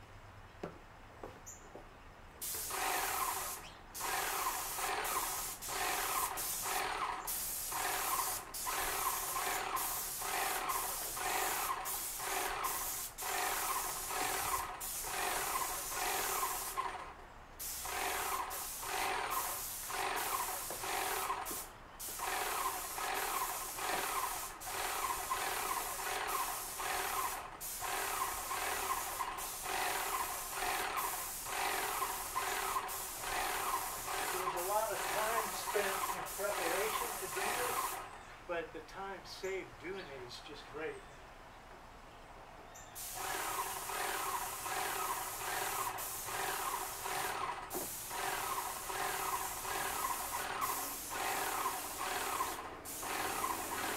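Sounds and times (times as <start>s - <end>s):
paint sprayer pulsing hiss: 2.4s - 38.1s, 43.0s - 53.9s.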